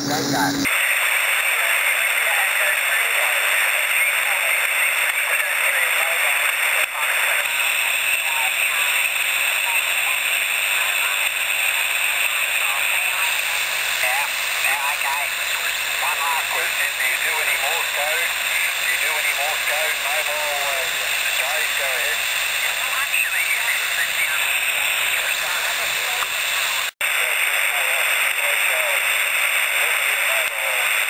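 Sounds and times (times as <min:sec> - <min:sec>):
faint voice through radio noise: 0:00.0 - 0:31.0
radio hiss and static: 0:00.0 - 0:31.0.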